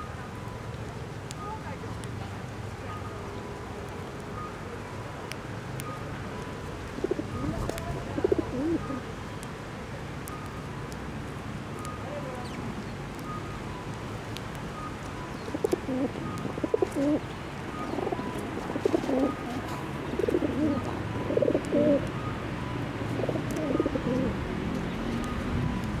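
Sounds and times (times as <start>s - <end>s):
dove cooing: 7.0s - 9.1s, 15.5s - 22.1s, 23.0s - 24.4s.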